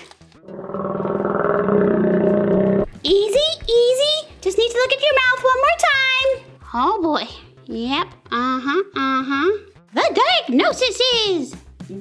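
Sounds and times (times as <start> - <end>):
growling animal roar: 0.4 - 2.9.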